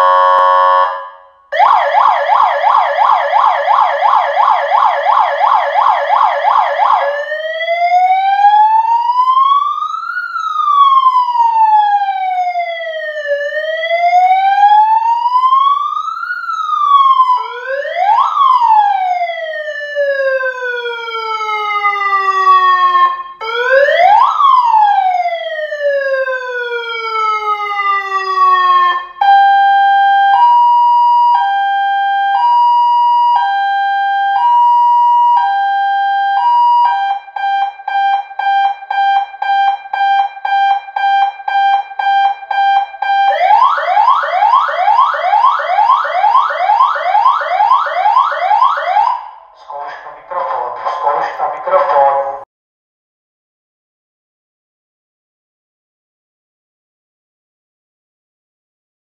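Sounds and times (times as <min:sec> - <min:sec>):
electronic siren wailing and yelping: 0:00.0 - 0:49.5.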